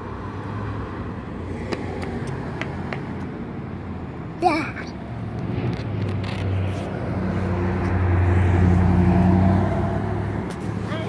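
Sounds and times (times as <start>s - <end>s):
vehicle engine passing by: 5.1s - 11.0s.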